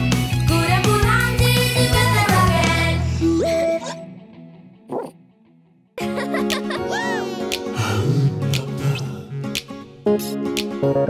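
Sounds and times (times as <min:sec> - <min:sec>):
children's song: 0:00.5 - 0:03.8
cartoon puppy bark: 0:04.9 - 0:05.2.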